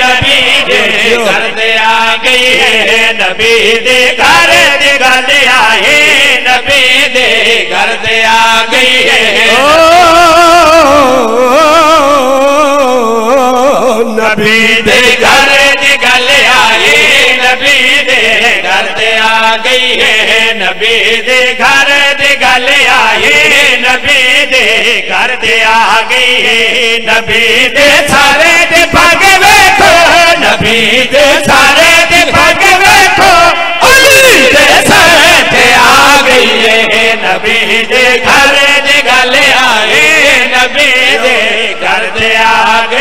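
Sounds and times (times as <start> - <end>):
men chanting in chorus: 0.0 - 43.0.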